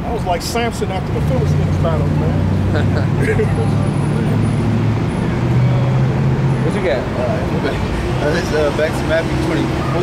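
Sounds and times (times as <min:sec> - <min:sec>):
street traffic: 0:00.0 - 0:10.0
large vehicle engine droning: 0:00.3 - 0:10.0.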